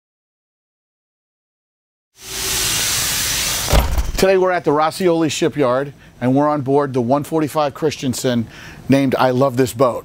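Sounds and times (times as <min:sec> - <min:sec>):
loud steady hiss: 0:02.2 - 0:04.5
low thump: 0:03.7 - 0:04.2.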